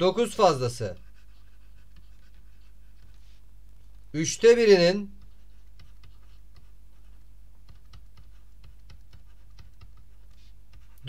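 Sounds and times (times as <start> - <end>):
stylus tapping on writing surface: 7.6 - 11.0.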